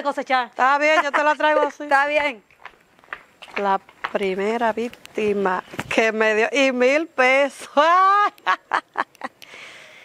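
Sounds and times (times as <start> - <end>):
woman laughing: 0.8 - 1.8, 7.8 - 9.4.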